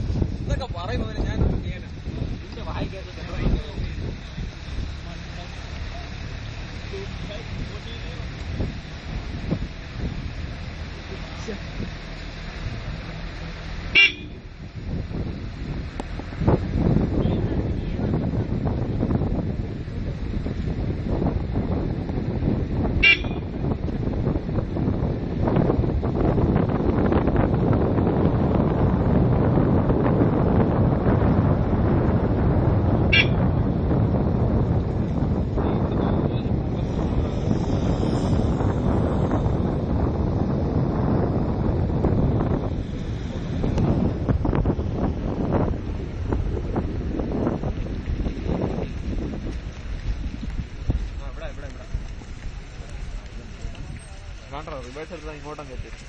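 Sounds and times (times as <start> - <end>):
steady low rumble: 0.0 - 56.0
wind buffeting microphone: 0.0 - 56.0.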